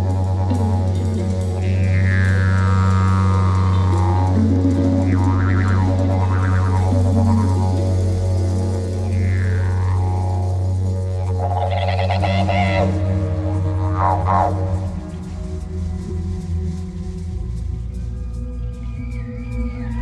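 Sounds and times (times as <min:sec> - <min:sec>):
didgeridoo drone: 0:00.0 - 0:20.0.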